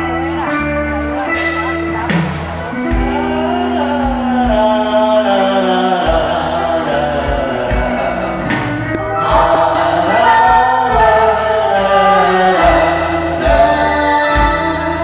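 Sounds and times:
backing music with bass beat: 0:00.0 - 0:15.0
person singing into a microphone: 0:02.7 - 0:15.0.

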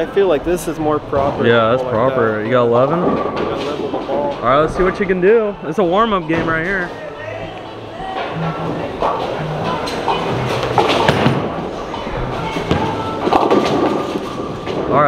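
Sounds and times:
bowling pins clattering: 0:00.9 - 0:05.4, 0:08.1 - 0:15.0
bowling ball rolling on lane: 0:07.8 - 0:14.9.

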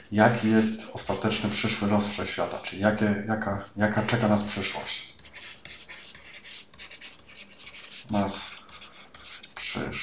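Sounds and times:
stylus scratching on drawing tablet: 0:00.0 - 0:03.0, 0:03.6 - 0:10.0.

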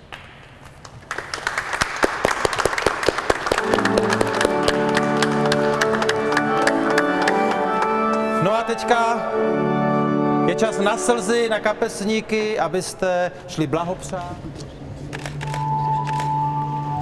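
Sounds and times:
people clapping: 0:00.0 - 0:08.4
organ chords: 0:03.6 - 0:12.8.

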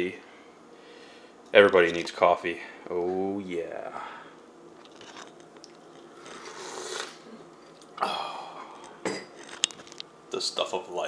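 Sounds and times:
coffee slurping: 0:04.8 - 0:07.3.

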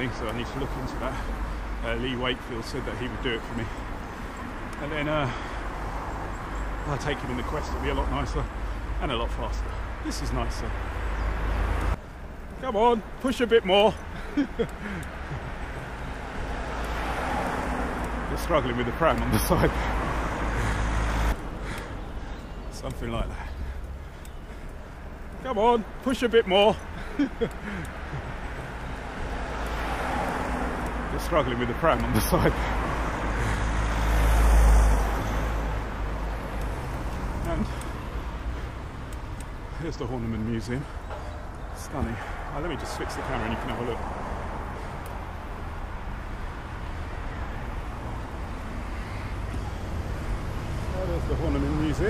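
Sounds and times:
vehicle approaching on road: 0:00.0 - 0:52.0.

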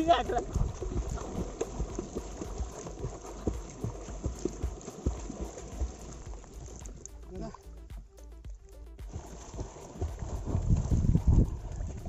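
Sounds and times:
water splashing from kicking: 0:00.0 - 0:12.0.

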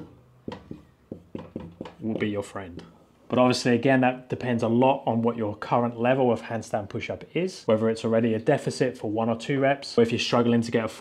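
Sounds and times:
marker writing on whiteboard: 0:00.0 - 0:03.0.

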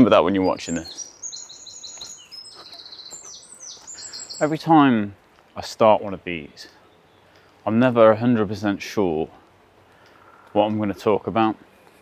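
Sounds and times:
songbird singing: 0:00.0 - 0:11.6.

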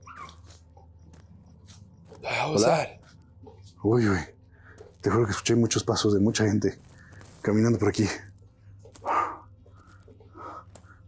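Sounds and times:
crunching footsteps: 0:00.0 - 0:04.0, 0:04.6 - 0:11.0
low steady hum: 0:00.0 - 0:11.0.

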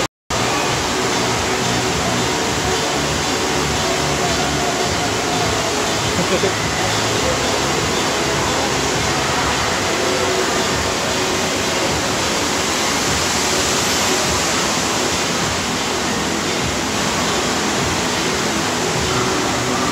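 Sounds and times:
rush of pumped water: 0:00.0 - 0:19.9.

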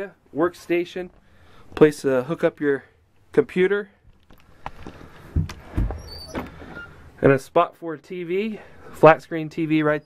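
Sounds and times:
cabinet door squeak: 0:05.6 - 0:07.0.

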